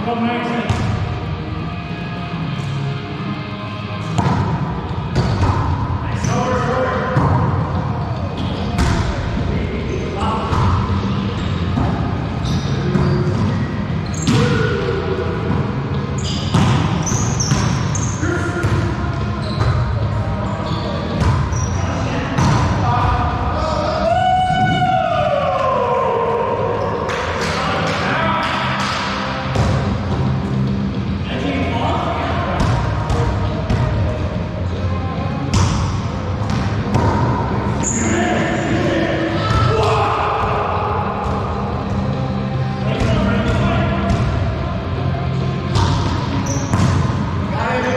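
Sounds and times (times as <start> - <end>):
ball slapped by hands echoing: 4.0 - 5.9, 27.0 - 30.3, 35.5 - 37.7, 45.7 - 47.3
sneakers squeaking on hardwood: 12.4 - 14.6, 16.0 - 22.7, 36.4 - 38.2, 45.7 - 47.1.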